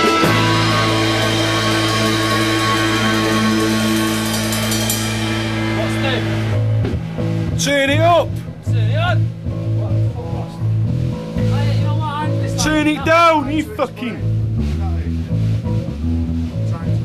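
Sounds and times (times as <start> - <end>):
guitar chord ringing: 0.0 - 14.6
low bass notes: 0.0 - 17.0.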